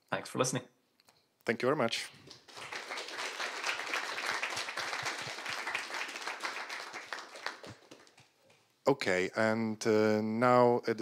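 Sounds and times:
audience applauding: 2.2 - 8.6.

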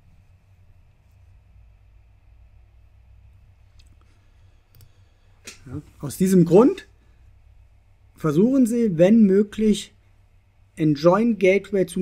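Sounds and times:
low room hum: 0.0 - 12.0
computer mouse clicks: 4.7 - 5.6.

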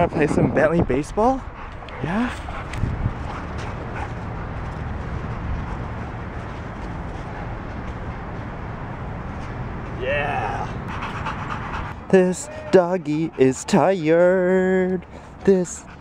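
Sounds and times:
dog panting hard: 1.4 - 6.6, 10.8 - 14.2, 15.0 - 16.0.

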